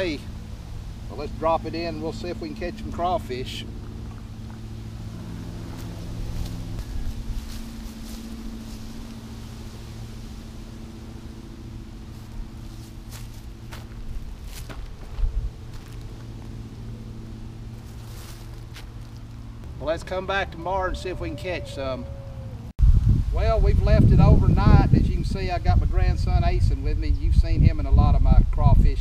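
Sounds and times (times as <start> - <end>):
car engine idling: 0.0 - 22.7.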